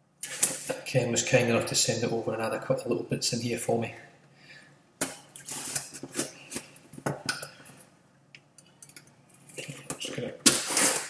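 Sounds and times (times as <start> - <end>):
blade cutting cardboard box: 10.5 - 11.0.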